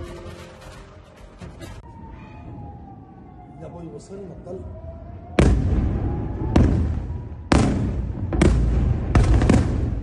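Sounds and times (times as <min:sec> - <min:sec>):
loud explosions with rumbling: 0:05.4 - 0:10.0.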